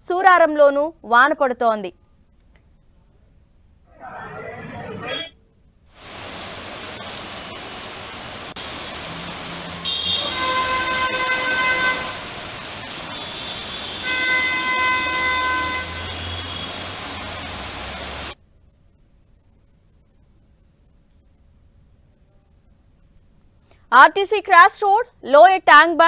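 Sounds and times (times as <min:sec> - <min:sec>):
tyres on wet street: 0:04.0 - 0:18.4
rain: 0:05.8 - 0:24.4
vehicle horn honking: 0:09.8 - 0:12.2, 0:13.1 - 0:16.8.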